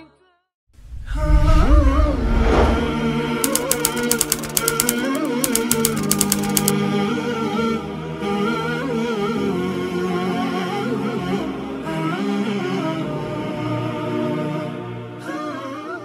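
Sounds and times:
typewriter key clicks: 3.4 - 6.8.

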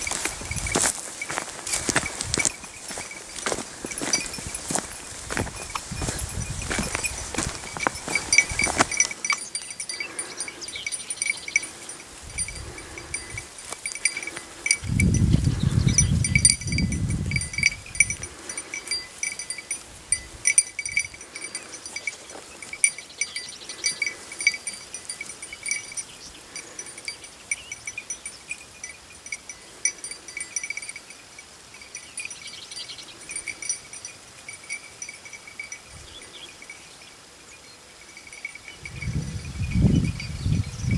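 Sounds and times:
small bell jingling: 0.0 - 37.1, 38.0 - 40.9.

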